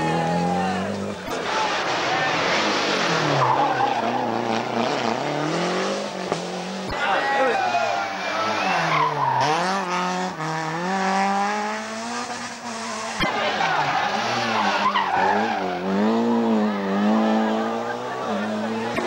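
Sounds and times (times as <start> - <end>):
rally car engines revving: 0.0 - 19.0.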